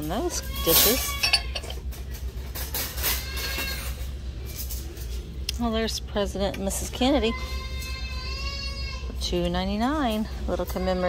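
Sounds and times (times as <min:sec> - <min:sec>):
low background hum: 0:00.0 - 0:11.0
ceramic bowls clinking: 0:00.6 - 0:02.1.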